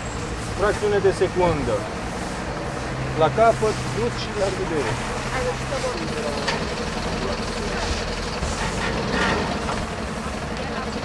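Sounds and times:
vehicle engine idling: 0.0 - 11.0
voices talking: 0.0 - 11.0.

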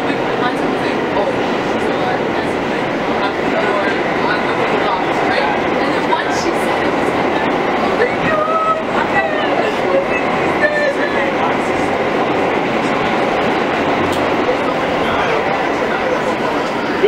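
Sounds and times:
subway train rumbling and rattling: 0.0 - 17.0.

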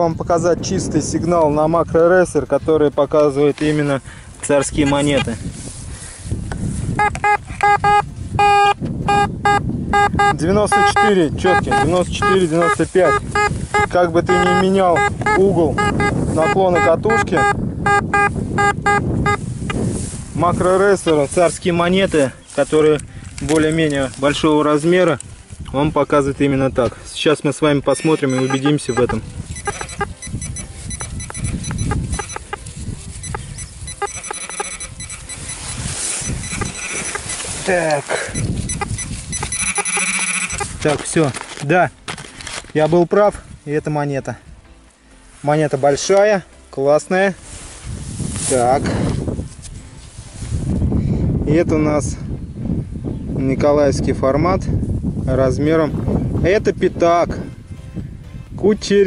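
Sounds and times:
coil rustling through grass: 3.2 - 8.4, 10.7 - 17.2, 18.4 - 43.9, 45.2 - 50.9
metal detector beeps: 7.0 - 19.4, 28.0 - 40.9.

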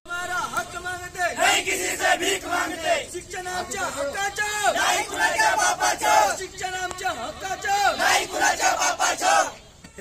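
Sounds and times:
protesters shouting together: 1.4 - 9.6.

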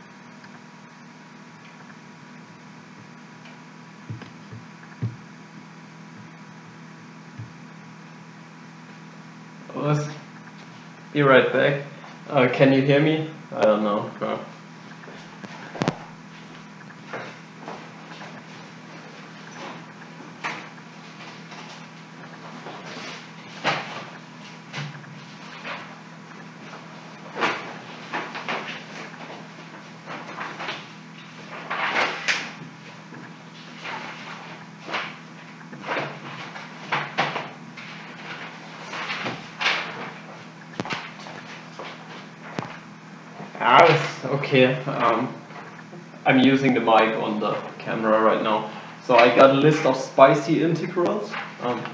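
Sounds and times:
steady low hum: 0.0 - 51.9
objects knocking and rustling: 4.1 - 5.3.

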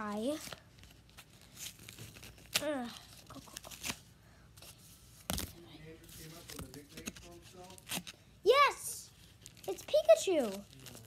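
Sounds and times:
packaging ripping and crinkling: 0.3 - 4.1, 9.2 - 11.0.

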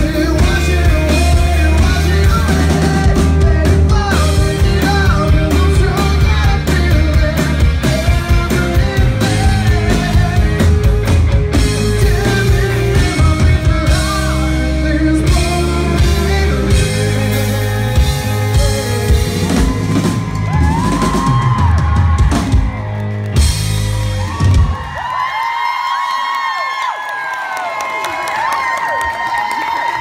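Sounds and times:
live rock band playing: 0.0 - 25.1
audience cheering and whooping: 17.2 - 30.0.

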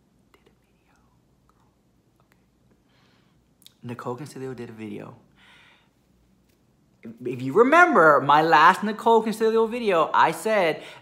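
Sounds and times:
low room hum: 0.0 - 11.0
faint whispering voice: 0.2 - 1.8.

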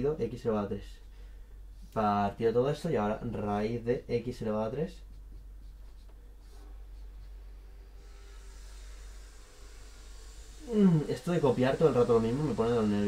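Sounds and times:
low electrical hum: 0.0 - 13.0
marker writing on whiteboard: 5.1 - 7.5.

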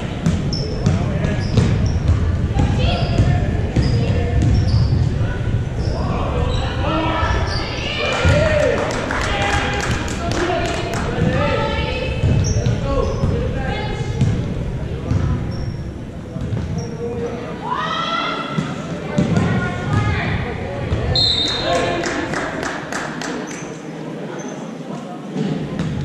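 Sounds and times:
sneakers squeaking: 0.1 - 8.4, 11.2 - 17.6, 20.9 - 22.0, 23.5 - 26.0.

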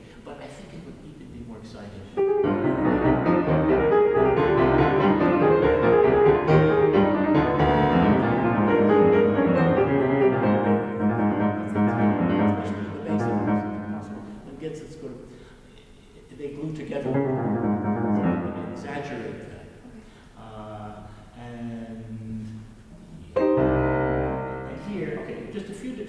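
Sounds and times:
grand piano playing chords and runs: 2.2 - 14.5, 17.0 - 19.3, 23.4 - 25.6.

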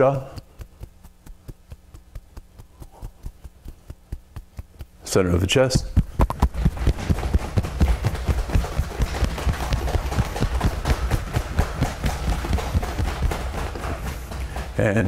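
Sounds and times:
cupped hands slapping chest: 0.1 - 5.2, 5.8 - 14.8.

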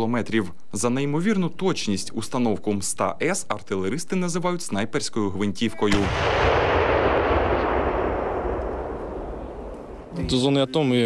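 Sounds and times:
howitzer firing boom: 5.9 - 10.4.

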